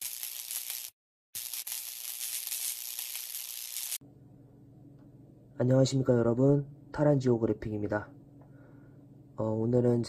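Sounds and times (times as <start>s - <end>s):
hissing crackling static: 0.0s - 4.0s.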